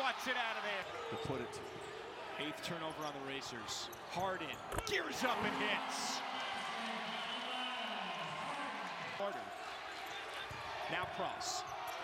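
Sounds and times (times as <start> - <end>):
arena crowd cheering: 0.0 - 1.5, 4.9 - 12.0.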